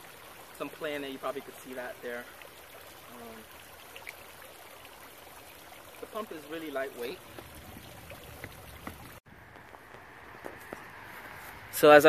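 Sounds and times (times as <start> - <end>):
faint steady hiss: 0.0 - 7.2.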